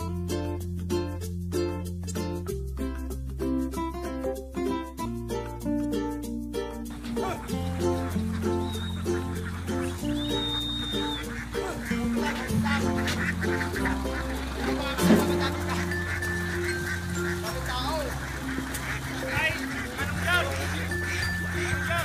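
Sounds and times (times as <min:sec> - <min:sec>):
background music with bass line: 0:00.0 - 0:22.0
ducks quacking: 0:06.9 - 0:22.0.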